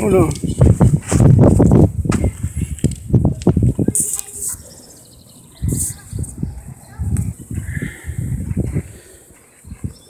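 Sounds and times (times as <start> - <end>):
low indistinct talking: 2.2 - 10.0.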